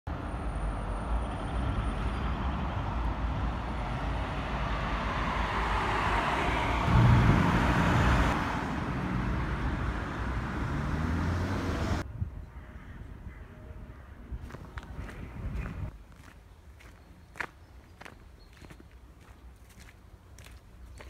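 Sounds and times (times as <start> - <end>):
traffic rumble: 0.1 - 12.1, 13.1 - 21.0
vehicle passing close: 3.9 - 12.0.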